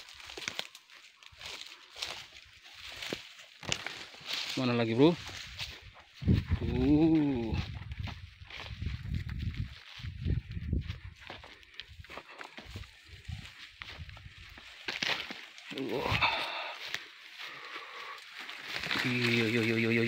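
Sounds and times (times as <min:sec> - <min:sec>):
palm fronds rustling: 0:00.0 - 0:10.2, 0:10.8 - 0:20.0
footsteps in undergrowth: 0:00.0 - 0:20.0.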